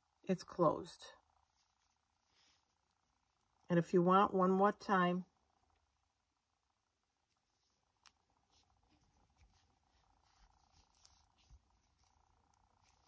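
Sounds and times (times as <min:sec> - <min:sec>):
yarn rustling: 0:01.3 - 0:03.7, 0:07.1 - 0:13.0.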